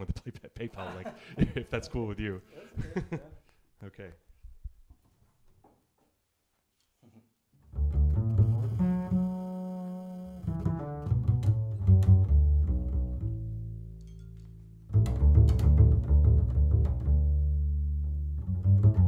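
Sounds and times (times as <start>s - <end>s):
double bass solo: 7.6s - 19.0s.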